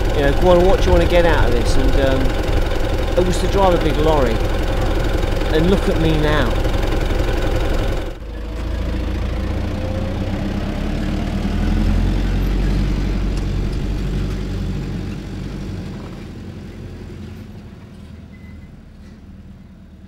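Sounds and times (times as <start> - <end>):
lorry diesel engine rumbling: 0.0 - 20.0.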